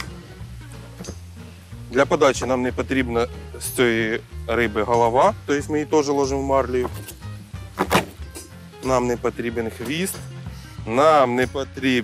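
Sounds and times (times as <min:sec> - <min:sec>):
background music with bass line: 0:00.0 - 0:12.0
knife chopping on wooden board: 0:07.8 - 0:08.2.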